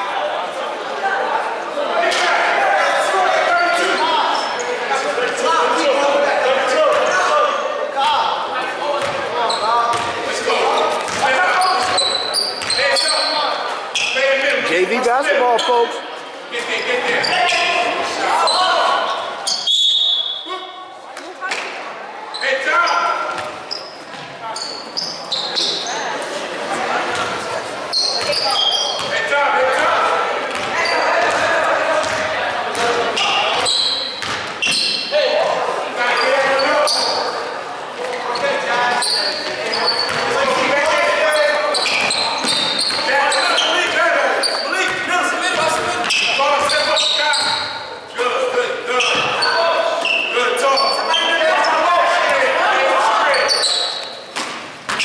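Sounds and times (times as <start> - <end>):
echoing voices: 0.0 - 55.0.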